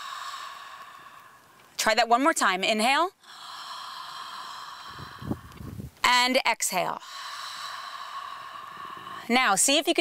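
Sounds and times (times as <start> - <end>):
woman inhaling through open mouth: 0.0 - 1.6, 3.2 - 5.9, 7.0 - 9.4.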